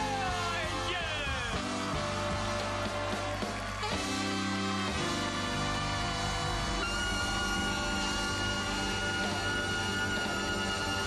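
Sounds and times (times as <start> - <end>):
band playing upbeat jazz: 0.0 - 11.0.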